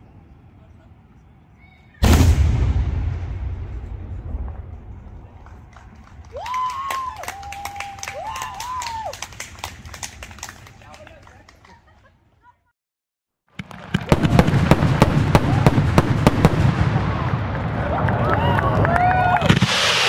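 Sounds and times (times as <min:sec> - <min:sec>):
firework bang echoing: 0:02.0 - 0:06.2, 0:13.5 - 0:18.0
people clapping: 0:05.4 - 0:12.1, 0:17.8 - 0:19.5
person whooping cheer: 0:06.3 - 0:09.2, 0:17.8 - 0:19.5.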